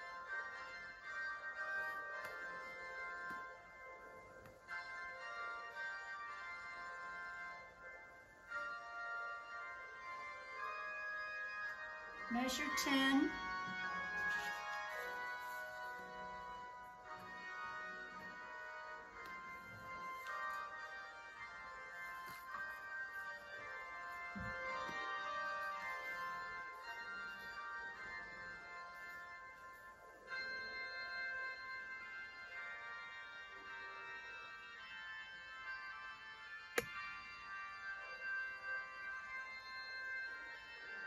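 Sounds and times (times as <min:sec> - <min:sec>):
quiet anthem music with held chords: 0:00.0 - 0:41.0.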